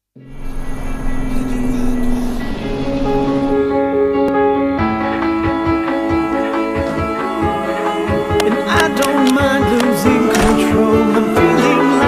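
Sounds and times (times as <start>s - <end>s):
car engine running: 0.2s - 5.1s
background music with sustained notes: 0.2s - 12.0s.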